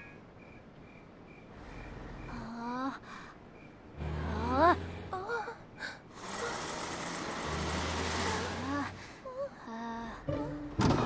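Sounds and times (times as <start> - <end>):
vehicle engine hum with hiss: 1.1 - 10.0
wordless cartoon voice sounds: 4.0 - 6.7.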